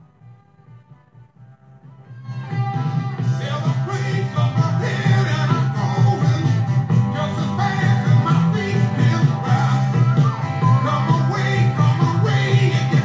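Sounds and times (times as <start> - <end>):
recorded song playing: 0.0 - 13.0.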